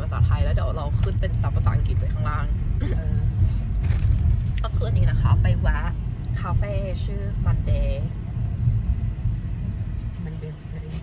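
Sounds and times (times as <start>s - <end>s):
low rumble inside car: 0.0s - 11.0s.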